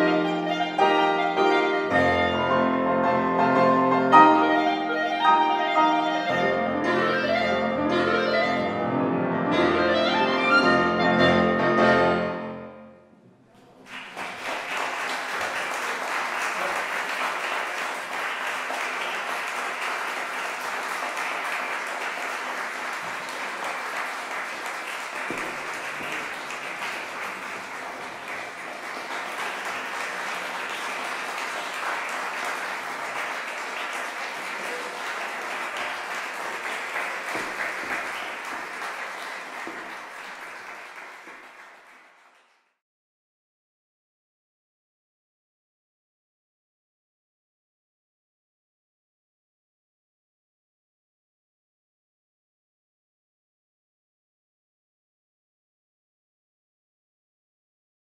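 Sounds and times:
audience applauding: 13.6 - 42.7.

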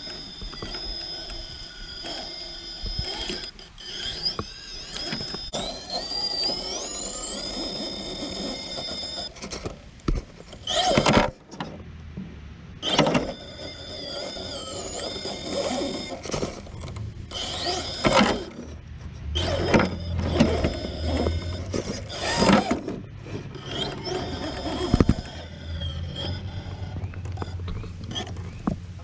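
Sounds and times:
electric motor whining: 0.0 - 9.8, 10.5 - 11.4, 12.8 - 28.7
tyres grinding against rock: 0.0 - 11.7, 12.8 - 28.8.

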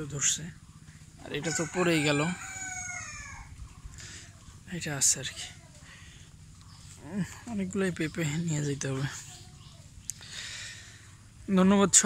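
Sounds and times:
rooster crowing: 1.2 - 3.6.

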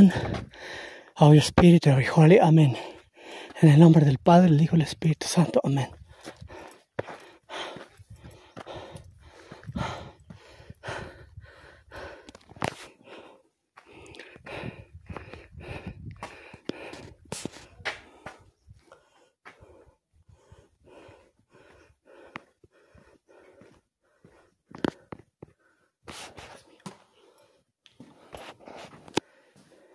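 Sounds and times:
person breathing: 0.0 - 1.2, 2.7 - 3.6, 6.0 - 29.9
footsteps on dirt: 5.7 - 19.8.

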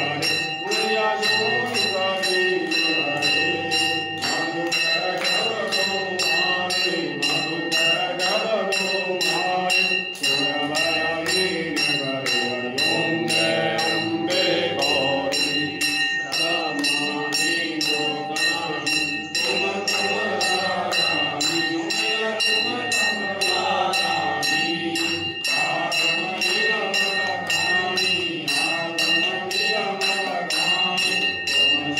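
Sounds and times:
brass bell ringing: 0.0 - 31.9
group singing devotional chant: 0.0 - 31.9.

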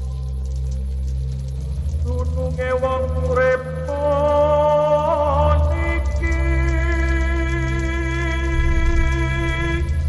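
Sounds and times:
ambient music drone: 0.0 - 10.0.

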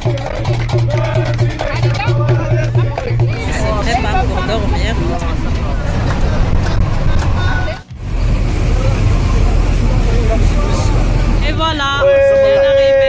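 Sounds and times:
bus road and engine rumble: 0.0 - 13.0
passengers chattering: 0.0 - 13.0.

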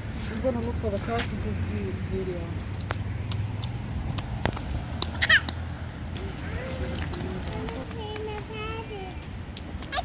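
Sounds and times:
splashing in a puddle: 0.0 - 8.5
child squealing: 5.2 - 5.5.

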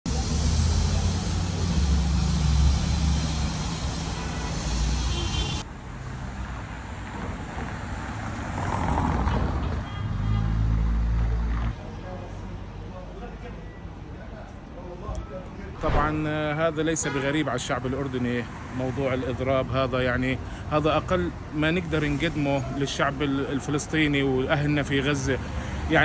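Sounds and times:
city street traffic: 0.0 - 26.0.

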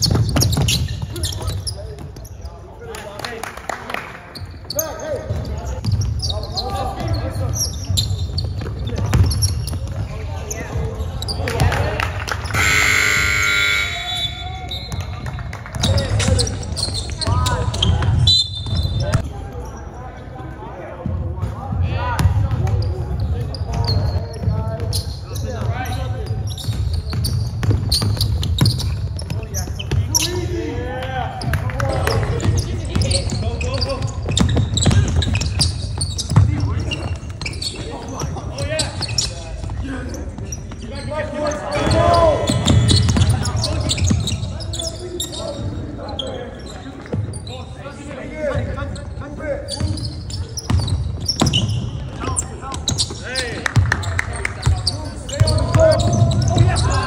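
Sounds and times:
basketball bouncing on floor: 0.0 - 2.1, 8.4 - 10.1, 26.6 - 30.0, 34.0 - 36.6
shoes on court: 0.0 - 2.8, 4.4 - 19.3, 21.0 - 57.0.

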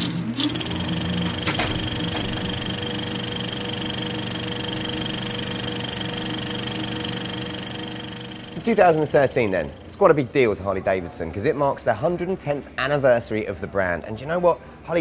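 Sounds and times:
film projector whirring and rattling: 0.0 - 10.2.

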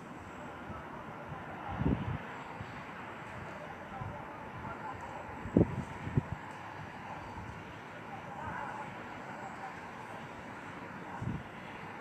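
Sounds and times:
outdoor rumble and hiss: 0.0 - 12.0.

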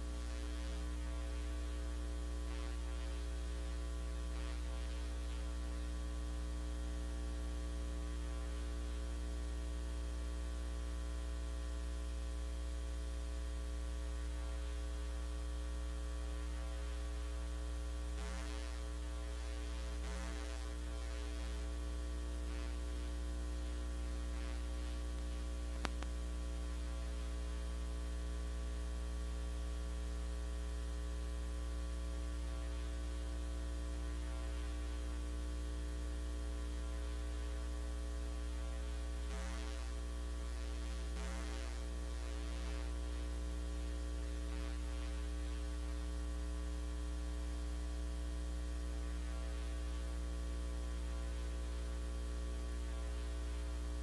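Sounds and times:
electrical mains hum: 0.0 - 54.0
faint click: 25.1 - 26.2.

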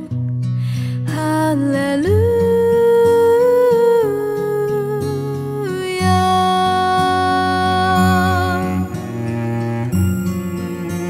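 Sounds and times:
soft instrumental accompaniment: 0.0 - 11.0.

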